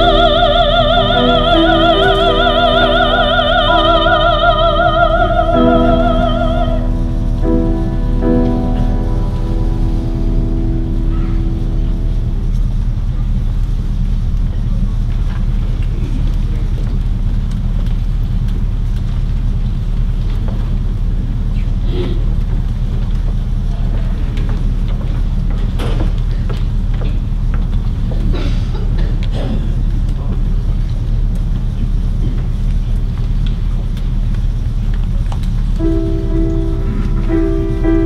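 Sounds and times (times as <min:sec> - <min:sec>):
choir holding a chord: 0:00.0 - 0:13.1, 0:35.8 - 0:38.0
low rumble: 0:00.0 - 0:38.0.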